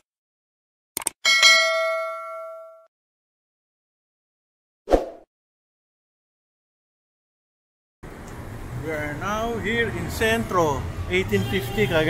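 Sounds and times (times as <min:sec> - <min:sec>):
notification bell ding: 0:01.3 - 0:02.9.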